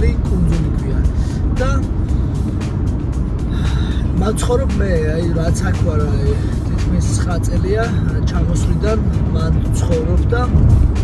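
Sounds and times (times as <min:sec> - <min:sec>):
car road noise rumble: 0:00.0 - 0:11.0
music playing: 0:00.0 - 0:11.0.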